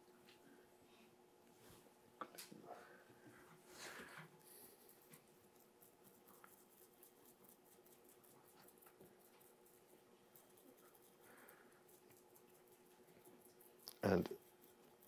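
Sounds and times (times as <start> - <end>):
faint steady hum: 0.0 - 15.0
brush scratching on paper: 4.5 - 15.0.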